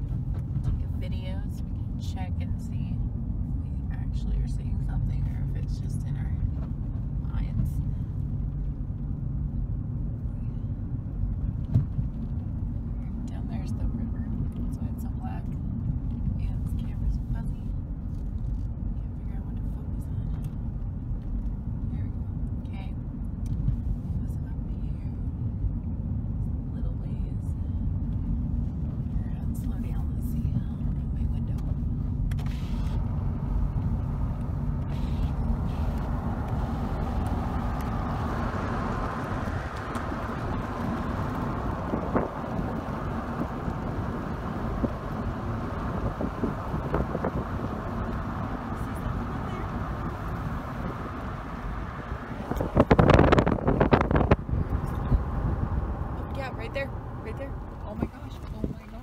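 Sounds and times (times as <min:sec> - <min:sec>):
car tyre and engine rumble: 0:00.0 - 0:59.0.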